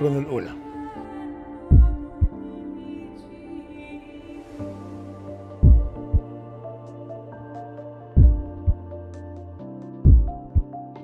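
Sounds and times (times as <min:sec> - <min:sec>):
deep double thump: 0:10.1 - 0:10.6.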